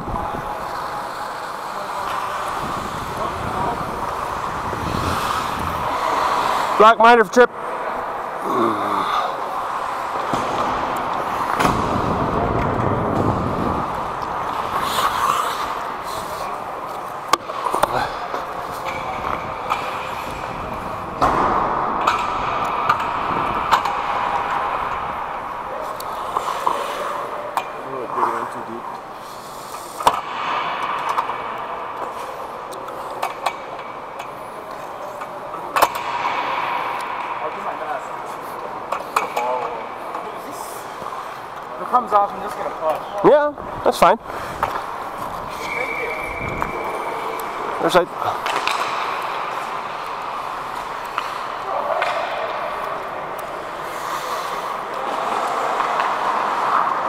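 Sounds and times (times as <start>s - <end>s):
players' voices: 0.0s - 57.0s
skate blades on ice: 0.3s - 6.8s, 9.6s - 28.4s, 44.3s - 57.0s
sticks and pucks knocking: 47.8s - 52.6s.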